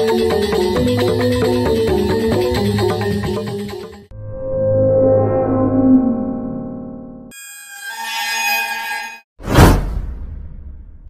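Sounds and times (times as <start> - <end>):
synth music chord: 4.1 - 7.3.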